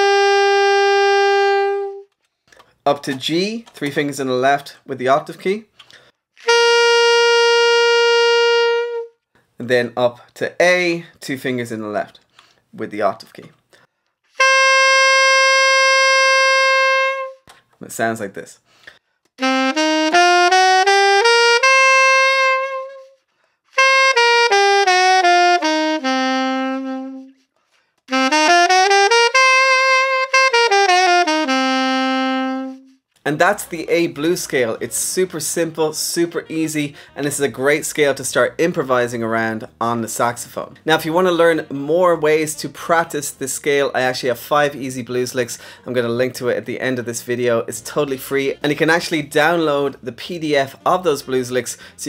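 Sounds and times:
alto saxophone sustained note: 0:00.0 - 0:02.0, 0:23.8 - 0:27.4, 0:28.1 - 0:32.9
alto saxophone playing scale: 0:00.0 - 0:02.2, 0:06.4 - 0:09.2, 0:14.3 - 0:17.5, 0:19.4 - 0:27.5, 0:28.1 - 0:33.1.

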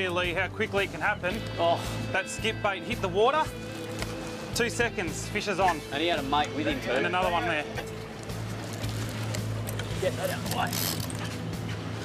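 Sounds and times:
background music with low drone: 0:00.0 - 0:12.0
boat at sea: 0:03.2 - 0:12.0.

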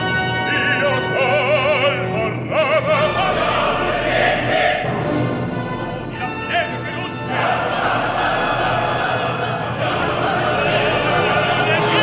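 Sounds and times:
chorus singing: 0:00.0 - 0:12.0
orchestra: 0:00.0 - 0:12.0
opera voice with vibrato: 0:06.1 - 0:12.0.

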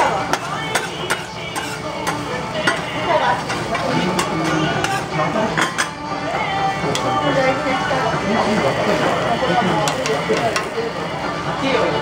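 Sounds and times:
batter sizzling on a griddle: 0:00.0 - 0:05.5
metal spatula clacks: 0:00.3 - 0:02.8.

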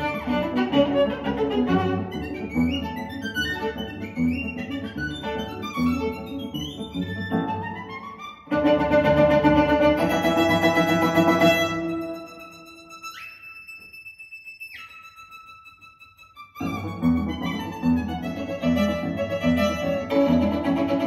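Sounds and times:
violin music over loudspeakers: 0:00.0 - 0:14.0, 0:14.6 - 0:21.0.

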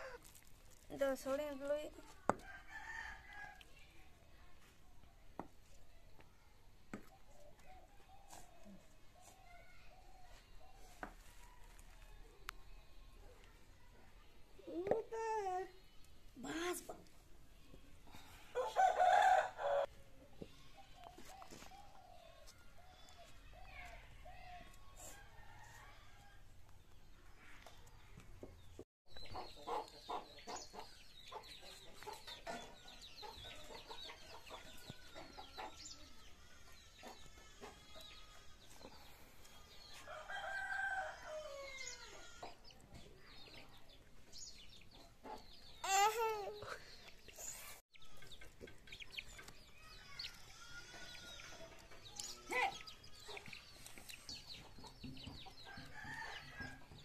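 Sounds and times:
small birds chirping: 0:00.0 - 0:26.1, 0:26.8 - 0:57.0
rooster crowing: 0:18.6 - 0:19.9, 0:40.0 - 0:42.2
chickens clucking: 0:29.1 - 0:40.1, 0:42.0 - 0:45.8, 0:46.6 - 0:57.0.

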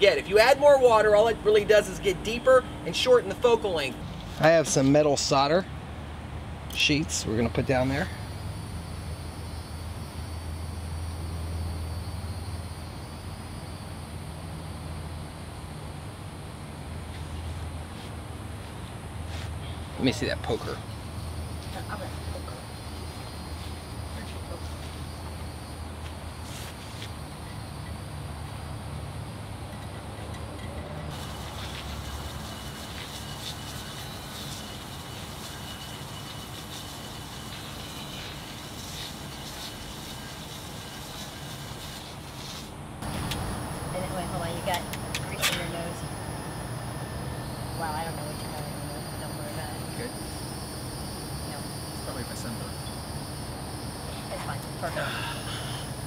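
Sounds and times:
low outdoor background rumble: 0:42.3 - 0:56.0.

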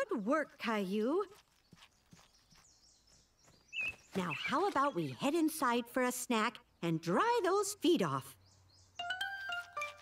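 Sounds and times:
high bird chirp: 0:01.3 - 0:05.3.

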